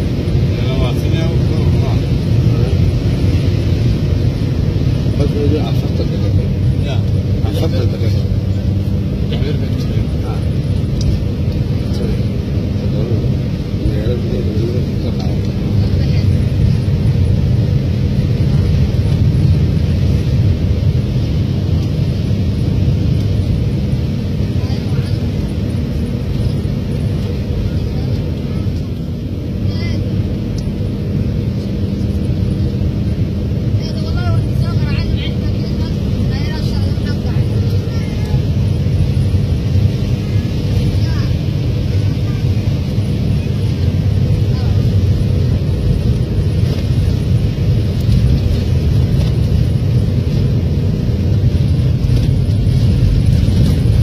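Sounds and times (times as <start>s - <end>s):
vehicle engine and road noise: 0.0s - 54.0s.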